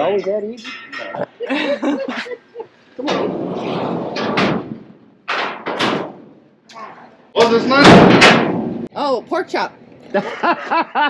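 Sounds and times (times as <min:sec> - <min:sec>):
steel cattle chute clanking: 0:00.0 - 0:01.3.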